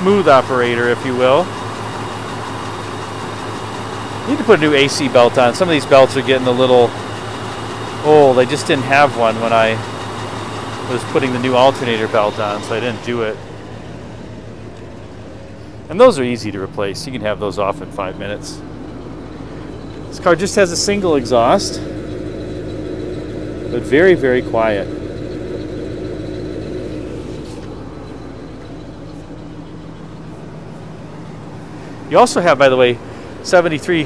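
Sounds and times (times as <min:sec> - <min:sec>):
car engine idling: 0:00.0 - 0:34.0.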